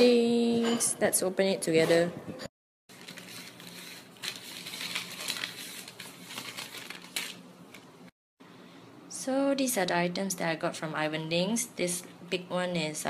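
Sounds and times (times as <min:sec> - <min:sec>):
packaging crinkling and tearing: 0:02.9 - 0:07.9.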